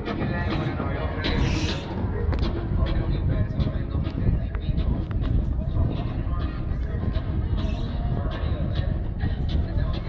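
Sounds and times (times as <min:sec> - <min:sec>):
faint background music: 0:00.0 - 0:10.0
indistinct crowd voices: 0:00.0 - 0:10.0
steady low rumble: 0:00.0 - 0:10.0.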